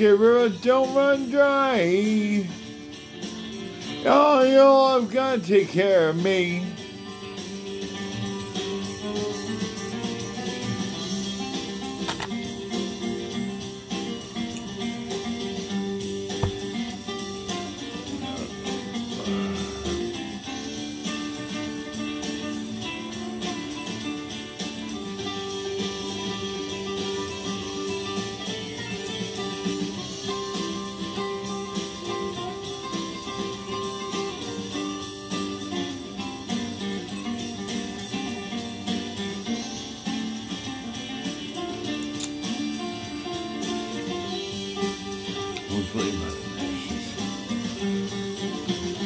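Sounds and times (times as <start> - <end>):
country music guitar instrumental: 0.0 - 49.0.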